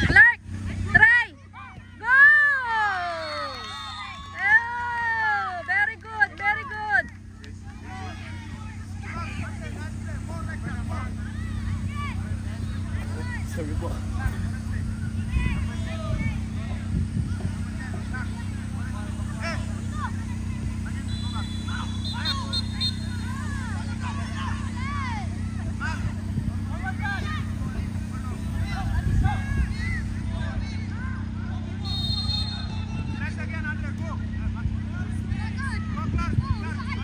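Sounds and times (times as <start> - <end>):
players and spectators shouting: 0.0 - 37.0
steady low rumble: 3.7 - 37.0.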